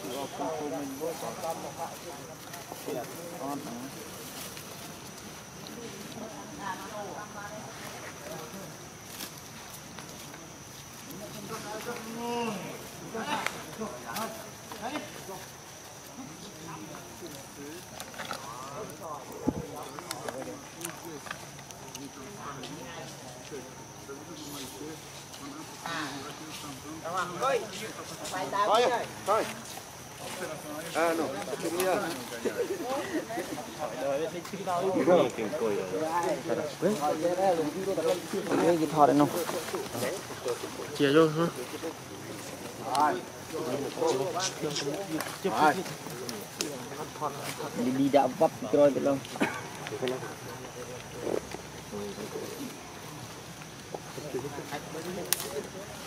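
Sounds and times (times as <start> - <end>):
indistinct background voices: 0.0 - 56.0
steady background hiss: 0.0 - 56.0.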